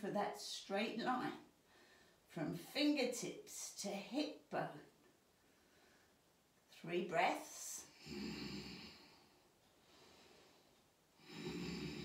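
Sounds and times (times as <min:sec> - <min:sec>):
woman breathing deeply: 0:01.6 - 0:02.3, 0:08.0 - 0:12.0.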